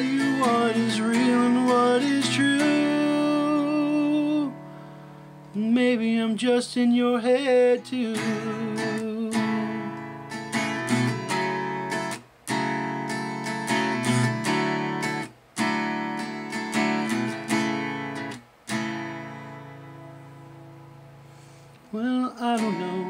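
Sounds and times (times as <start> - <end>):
acoustic guitar strumming chords: 0.0 - 23.0.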